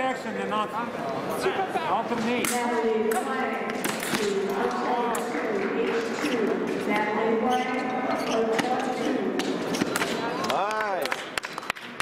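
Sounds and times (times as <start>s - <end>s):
voices calling in echoing hall: 0.0s - 12.0s
shoe sole squeak: 7.4s - 10.0s.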